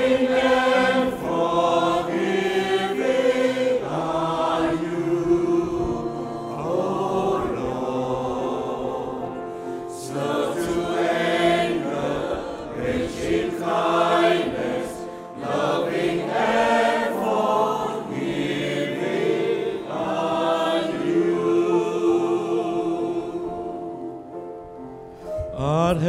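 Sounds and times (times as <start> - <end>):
choir singing a hymn: 0.0 - 26.0.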